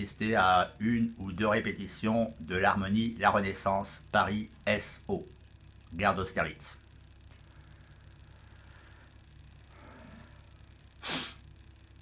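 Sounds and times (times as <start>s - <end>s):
man sneezing: 11.0s - 11.4s.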